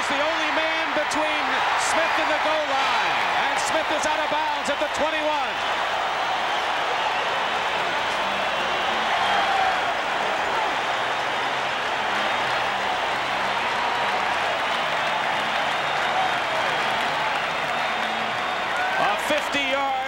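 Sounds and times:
stadium crowd cheering and applauding: 0:00.0 - 0:20.0.

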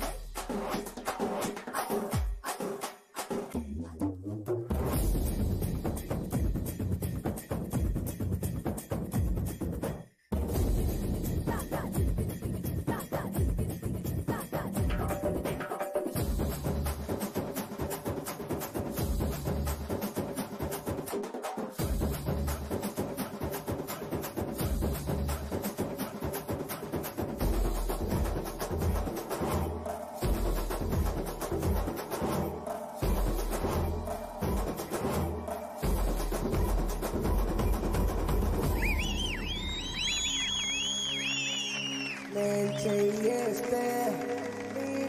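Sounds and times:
heavy bass: 0:03.6 - 0:07.0, 0:27.4 - 0:40.1
fast dense drumming: 0:18.8 - 0:39.1.

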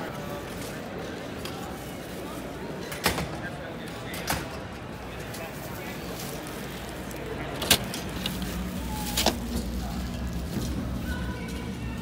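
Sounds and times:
low hum of large hall: 0:00.0 - 0:12.0.

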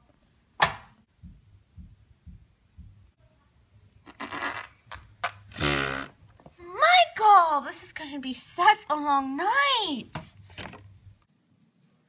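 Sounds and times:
person making mouth noises: 0:04.1 - 0:06.2.

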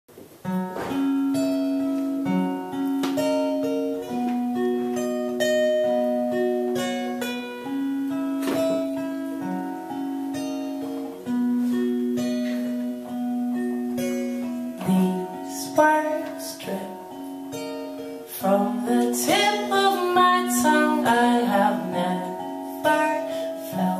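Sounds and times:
acoustic guitar picked notes: 0:00.1 - 0:23.9.

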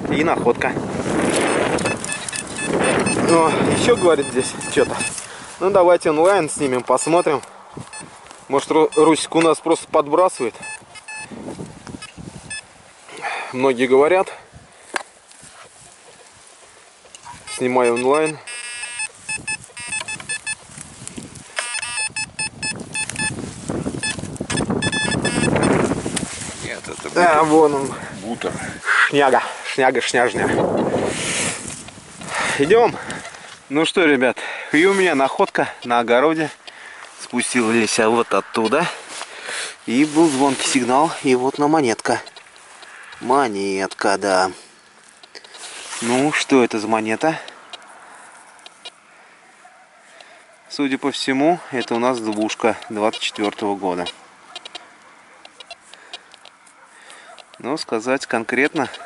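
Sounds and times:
faint outdoor background: 0:00.0 - 0:59.0
metal detector beeping: 0:01.3 - 0:11.4, 0:12.0 - 0:12.7, 0:17.2 - 0:20.7, 0:21.5 - 0:26.0, 0:35.0 - 0:36.7, 0:37.7 - 0:38.8, 0:48.6 - 0:49.0, 0:51.8 - 0:56.6.

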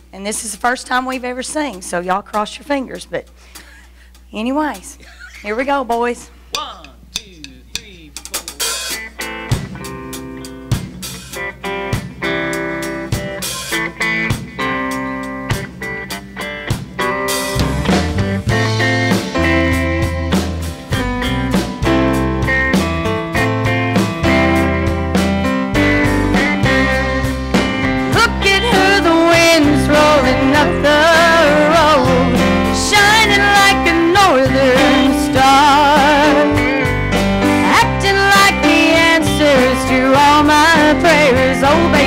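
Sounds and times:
drum kit: 0:01.0 - 0:42.0
electric guitar picking a melody: 0:08.6 - 0:42.0
deep bass notes: 0:17.6 - 0:32.8.

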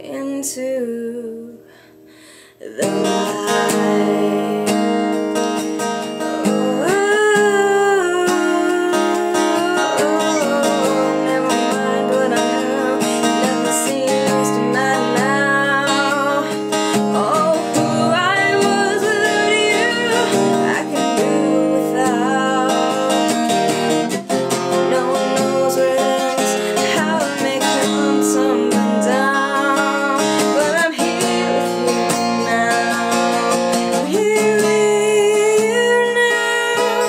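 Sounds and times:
woman singing: 0:00.0 - 0:01.9, 0:02.5 - 0:37.0
strummed acoustic guitar: 0:02.7 - 0:37.0.

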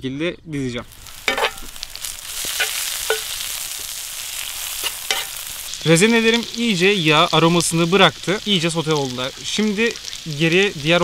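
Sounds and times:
vegetables sizzling in oil: 0:00.7 - 0:11.0
metal spoon clicking on pan: 0:02.6 - 0:03.3, 0:05.1 - 0:05.3.

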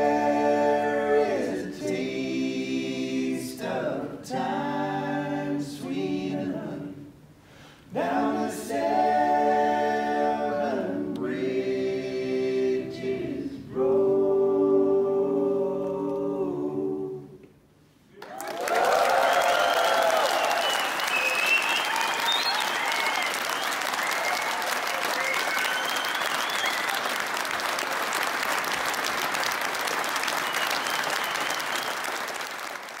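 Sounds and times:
audience cheering and whooping: 0:18.2 - 0:28.1, 0:29.9 - 0:32.4
audience applause: 0:18.2 - 0:33.0.

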